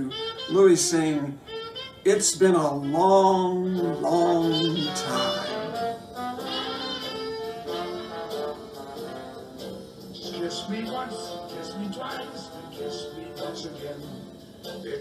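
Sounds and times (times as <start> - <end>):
jazz band with horns: 0.0 - 14.2.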